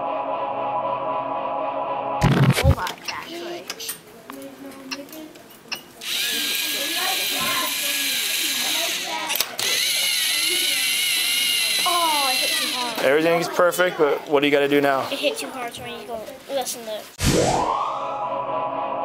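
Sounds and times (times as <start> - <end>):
faint children's voices: 2.7 - 17.2
toy robot motors whirring: 6.0 - 13.0.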